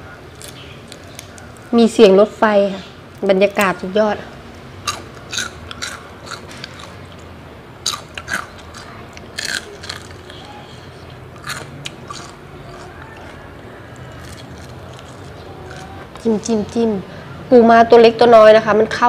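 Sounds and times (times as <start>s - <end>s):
person chewing crispy food: 0.1s - 1.7s, 4.5s - 16.8s.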